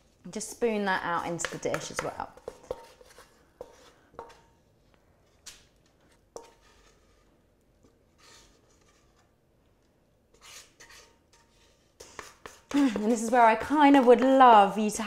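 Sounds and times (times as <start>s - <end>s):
spoon scraping metal bowl: 1.2s - 4.5s, 6.4s - 7.3s, 10.3s - 14.8s.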